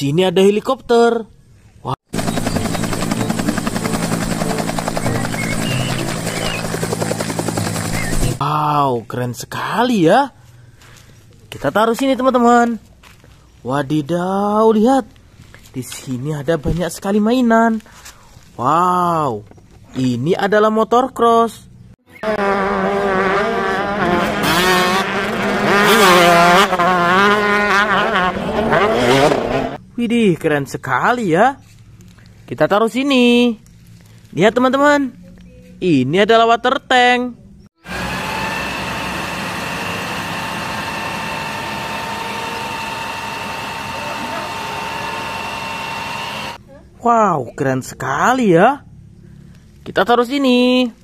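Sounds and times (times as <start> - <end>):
helicopter engine drone: 2.1 - 8.4, 37.8 - 46.6
rotor blades beating: 2.1 - 8.4, 37.8 - 46.6.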